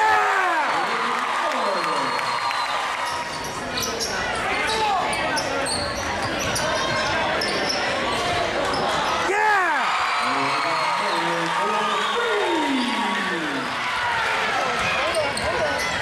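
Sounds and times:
crowd chatter and shouting: 0:00.0 - 0:16.0
sneaker squeaks on hardwood: 0:03.1 - 0:08.9.

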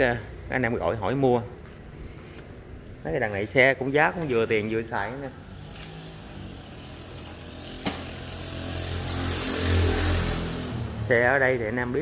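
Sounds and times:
passing vehicle engine: 0:05.3 - 0:12.0.

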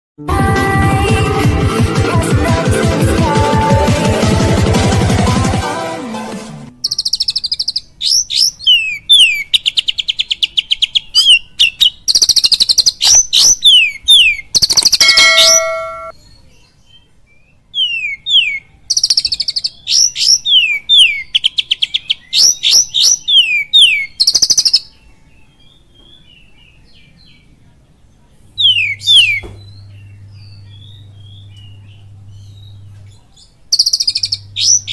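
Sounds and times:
intro music: 0:00.2 - 0:06.7, 0:15.0 - 0:16.1
bird singing: 0:06.8 - 0:27.5, 0:28.6 - 0:34.9.

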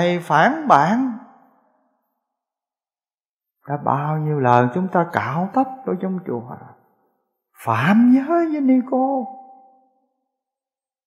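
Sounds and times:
man speaking: 0:00.0 - 0:01.3, 0:03.7 - 0:06.9, 0:07.6 - 0:09.3.

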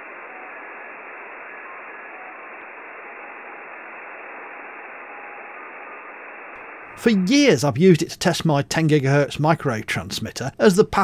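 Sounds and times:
faint brief radio tones: 0:00.0 - 0:07.0
radio receiver hiss: 0:00.0 - 0:08.4.

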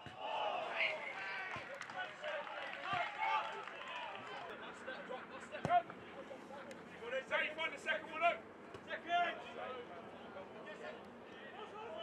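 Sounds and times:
footballers shouting: 0:00.0 - 0:04.8.

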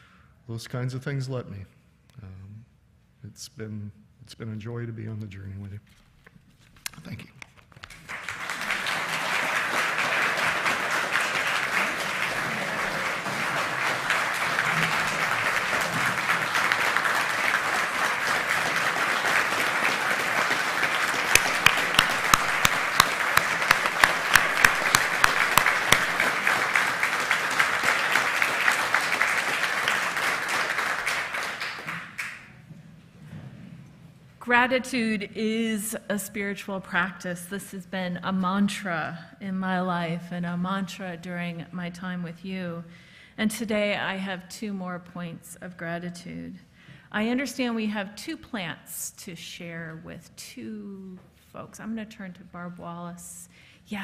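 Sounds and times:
congregation applauding: 0:07.8 - 0:32.7
person clapping close by: 0:07.9 - 0:32.5.

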